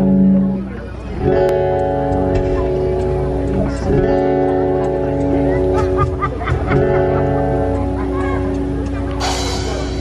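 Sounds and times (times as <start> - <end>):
electric bass: 0.0 - 10.0.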